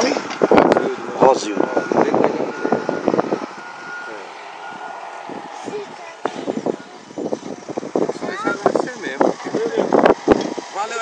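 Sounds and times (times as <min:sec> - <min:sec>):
heavy vehicle engine running: 0:00.0 - 0:11.0
reversing alarm beeps: 0:00.3 - 0:07.0.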